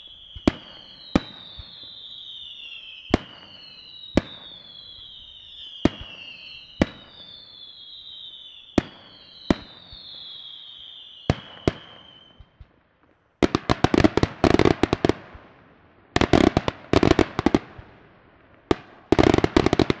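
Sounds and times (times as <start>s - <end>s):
high whistling fireworks: 0.0s - 20.0s
firework shells bursting: 16.2s - 20.0s.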